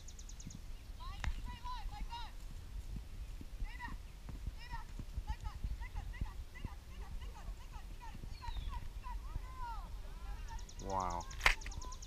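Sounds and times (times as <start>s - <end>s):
horse hooves thudding on grass: 0.0s - 12.0s
faint voices: 3.6s - 12.0s.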